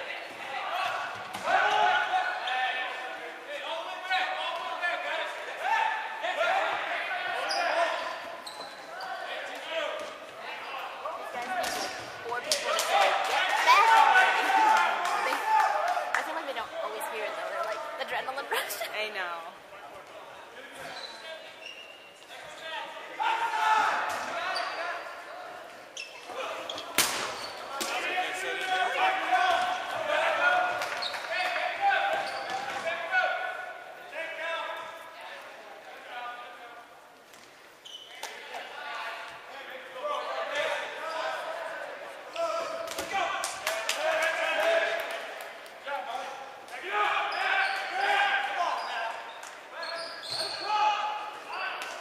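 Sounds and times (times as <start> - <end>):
players' voices: 0.0 - 52.0
players shouting: 12.3 - 18.1, 22.8 - 25.1.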